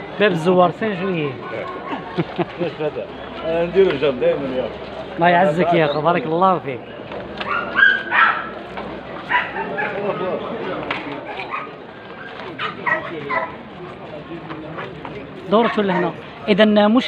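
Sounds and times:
murmur of voices: 0.0 - 17.0.

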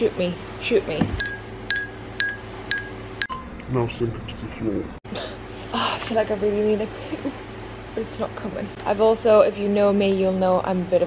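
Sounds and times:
high-pitched electronic tone: 1.1 - 3.7.

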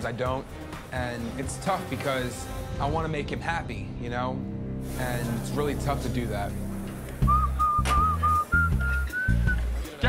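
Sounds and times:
background music with pulsing bass: 3.8 - 10.0
man whistling a tune: 7.2 - 9.8.

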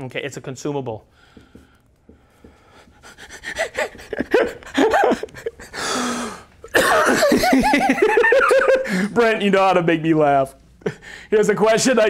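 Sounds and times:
person laughing: 3.3 - 6.0, 6.7 - 9.1.

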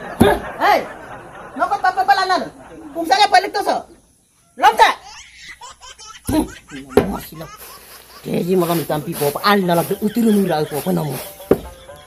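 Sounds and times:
person laughing: 0.2 - 0.8, 5.6 - 12.0.

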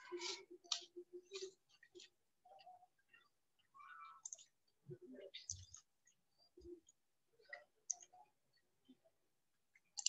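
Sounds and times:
faint clicks: 3.1 - 4.6.

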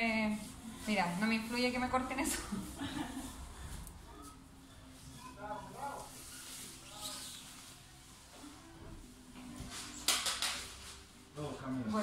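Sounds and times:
quiet low talking: 0.0 - 10.0.

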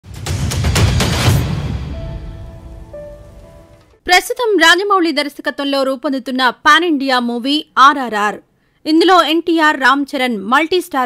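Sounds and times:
intro sting noisy wash: 0.0 - 4.0.

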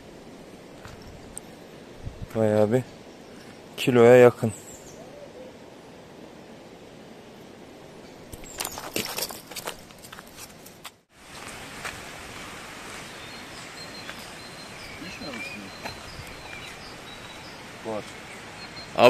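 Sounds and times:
outdoor ambience: 0.0 - 19.0
clicks and rustles: 8.3 - 11.0
faint high chirps: 13.1 - 19.0.

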